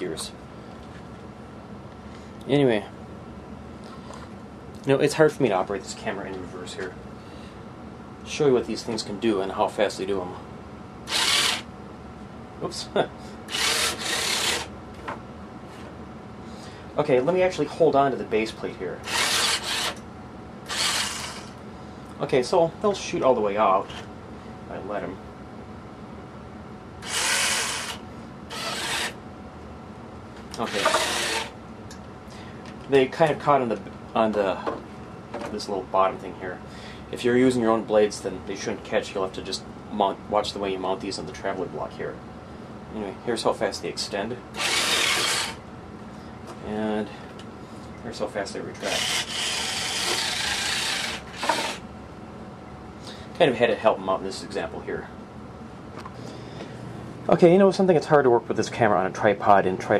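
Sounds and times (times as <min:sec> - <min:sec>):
small electric motor whirring: 0:11.1 - 0:11.7, 0:13.5 - 0:14.7, 0:19.0 - 0:20.0, 0:20.6 - 0:21.6, 0:27.0 - 0:29.2, 0:30.6 - 0:31.5, 0:44.6 - 0:45.6, 0:48.8 - 0:51.8.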